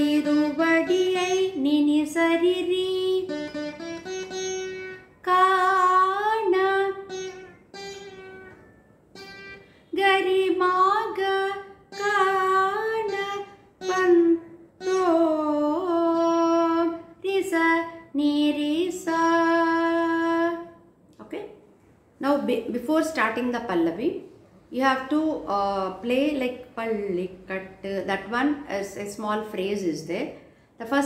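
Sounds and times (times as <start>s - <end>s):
veena plucked notes: 0.0s - 20.9s, 22.4s - 31.0s.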